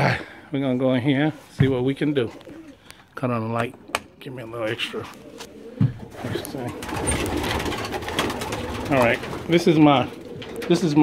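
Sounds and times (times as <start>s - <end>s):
pigeons cooing: 1.8s - 11.0s.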